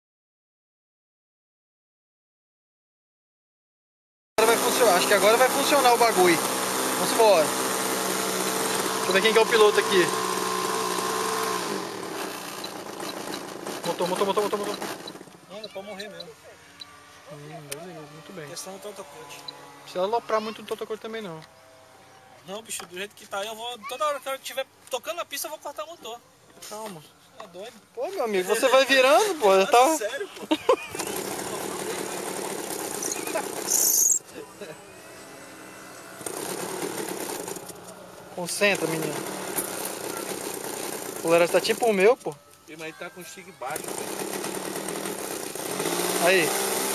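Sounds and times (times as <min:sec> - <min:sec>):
model airplane engine buzzing: 0:04.4 - 0:22.5, 0:27.2 - 0:46.9.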